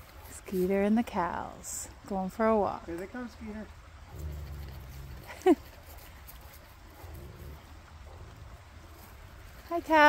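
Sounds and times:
light even hiss: 0.0s - 10.0s.

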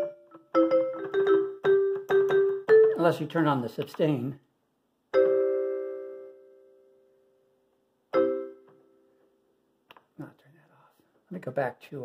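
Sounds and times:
keyboard marimba chords: 0.0s - 3.2s, 8.1s - 8.6s.

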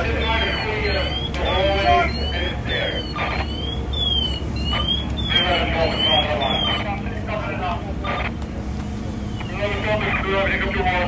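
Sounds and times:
indistinct voices: 0.0s - 8.6s, 9.3s - 11.0s
fire engines idling: 0.0s - 11.0s.

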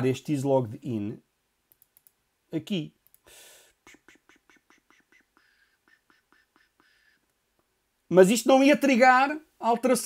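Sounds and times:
faint keyboard clicks: 1.7s - 2.2s, 3.0s - 3.3s.

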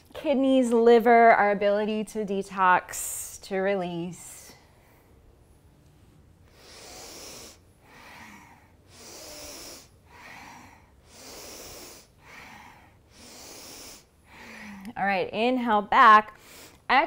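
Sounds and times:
woman breathing through nose: 6.5s - 15.0s, 16.4s - 16.9s.

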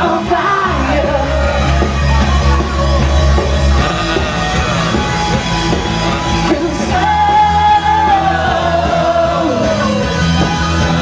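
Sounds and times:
loud singing: 0.0s - 11.0s
rock band playing: 0.0s - 11.0s.

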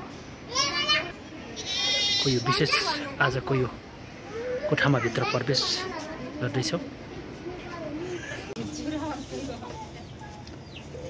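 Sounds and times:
chickens chirping: 8.3s - 11.0s.

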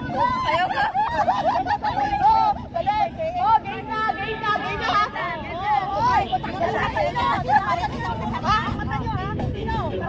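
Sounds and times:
people talking over one another: 0.0s - 10.0s
steady low rumble: 0.0s - 10.0s.

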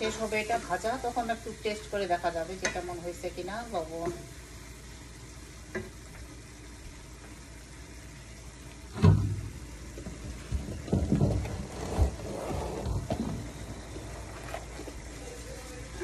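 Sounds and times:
food sizzling in a pan: 0.0s - 11.2s, 11.8s - 16.0s
loud thump: 9.0s - 9.5s.

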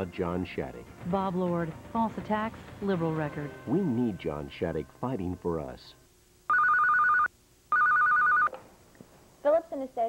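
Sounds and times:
desk phone ringing: 6.5s - 8.5s.

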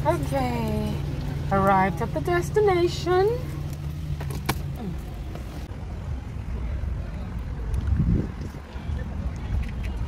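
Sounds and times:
car cabin rumble: 0.0s - 5.7s.

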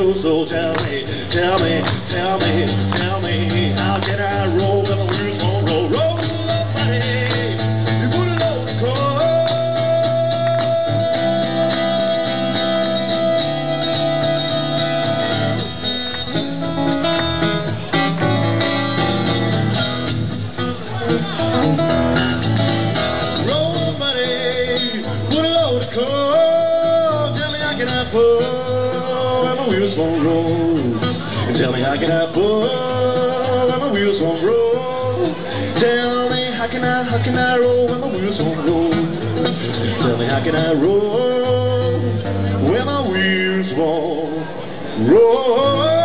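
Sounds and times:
acoustic guitar strummed and picked: 0.0s - 46.0s.

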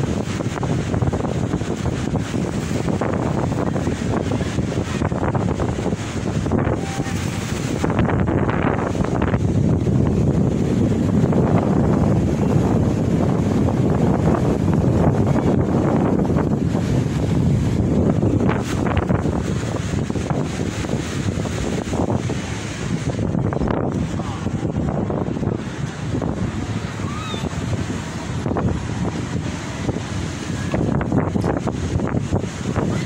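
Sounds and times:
sea surf breaking: 0.0s - 33.0s
wind buffeting microphone: 0.0s - 33.0s.

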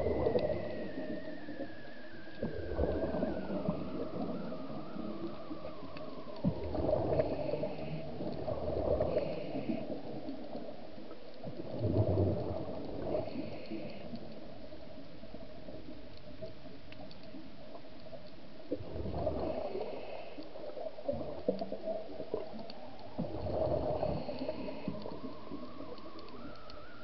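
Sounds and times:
gurgling exhaled bubbles: 0.0s - 10.8s, 11.4s - 13.6s, 18.7s - 20.0s, 20.6s - 27.0s
hissing regulator inhalations: 19.4s - 20.8s, 23.8s - 25.5s.

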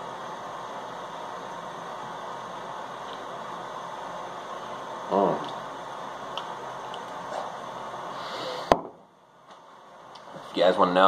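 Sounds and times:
fan hiss: 0.0s - 11.0s.

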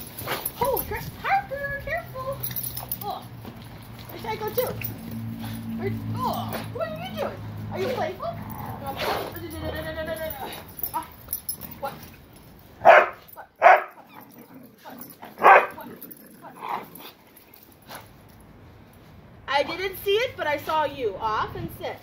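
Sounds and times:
dog barking: 12.8s - 14.0s, 15.4s - 15.8s.

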